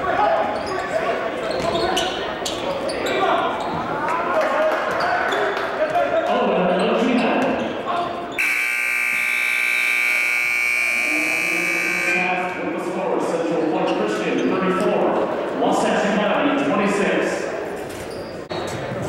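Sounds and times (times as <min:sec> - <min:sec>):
crowd voices: 0:00.0 - 0:19.0
scoreboard horn blare: 0:08.4 - 0:12.6.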